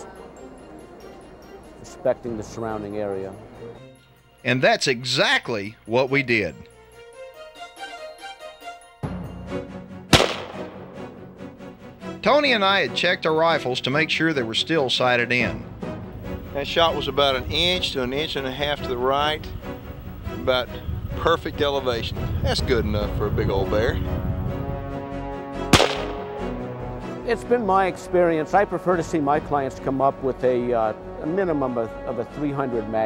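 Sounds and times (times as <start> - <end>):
rifle shot: 10.1 - 11.0, 25.7 - 26.4.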